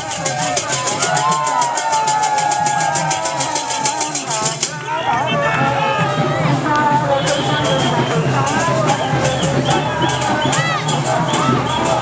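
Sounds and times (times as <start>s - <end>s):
fast hand percussion beat: 0.0s - 12.0s
men chanting and shouting: 0.0s - 12.0s.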